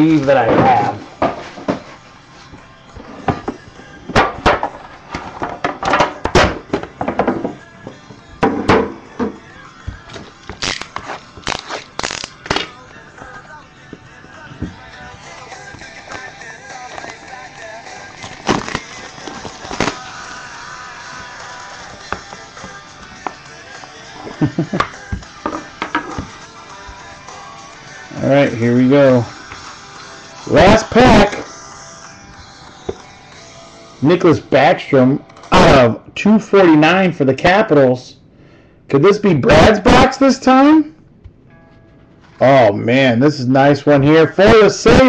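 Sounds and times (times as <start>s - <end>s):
background music: 0.0s - 45.0s
shrink-wrap crinkling: 10.5s - 12.5s, 18.2s - 20.5s.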